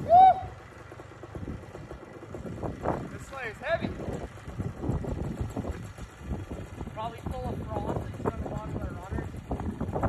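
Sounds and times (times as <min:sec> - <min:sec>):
low engine rumble: 0:00.0 - 0:10.0
wind buffeting microphone: 0:01.2 - 0:10.0.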